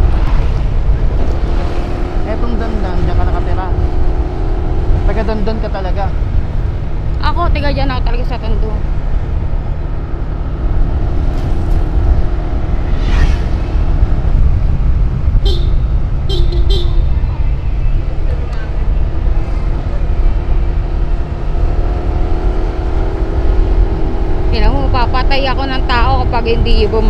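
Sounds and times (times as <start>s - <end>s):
motorcycle engine and road noise: 0.0s - 27.0s
wind rumble on microphone: 0.0s - 27.0s
horn toots: 15.4s - 17.2s.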